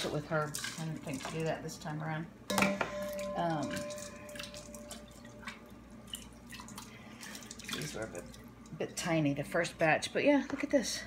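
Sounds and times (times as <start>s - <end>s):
water boiling in a pot: 0.0s - 11.0s.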